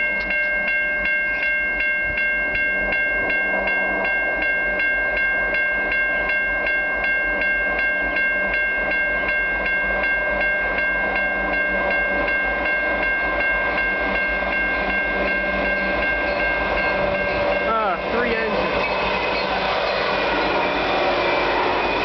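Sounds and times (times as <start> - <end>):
level crossing bell ringing: 0.0 - 22.0.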